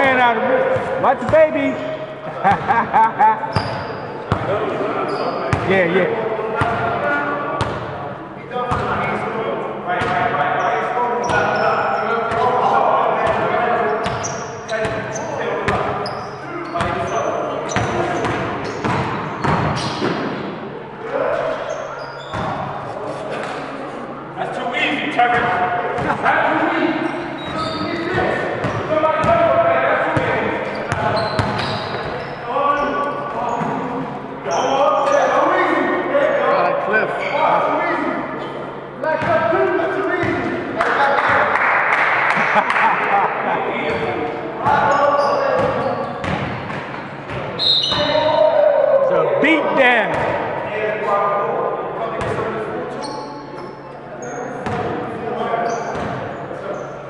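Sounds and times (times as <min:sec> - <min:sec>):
players' voices and chatter: 0:00.0 - 0:57.0
basketballs bouncing on gym floor: 0:17.7 - 0:20.3, 0:30.2 - 0:32.2, 0:45.6 - 0:48.2.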